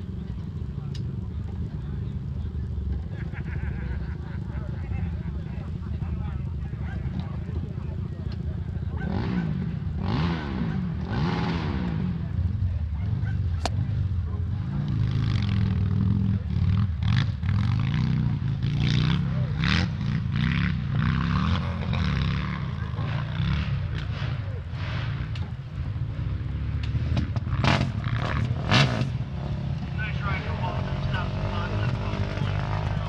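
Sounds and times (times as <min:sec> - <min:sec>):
motorcycle engine running: 0:00.0 - 0:33.0
people talking: 0:00.1 - 0:09.5, 0:30.0 - 0:33.0.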